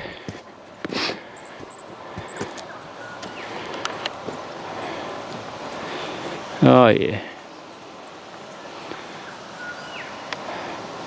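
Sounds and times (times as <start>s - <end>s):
footsteps on dirt and rock: 0.0s - 4.6s
outdoor background hiss: 0.0s - 11.0s.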